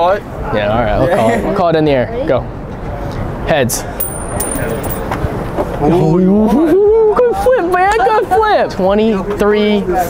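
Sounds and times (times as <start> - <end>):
street noise: 2.4 - 5.9.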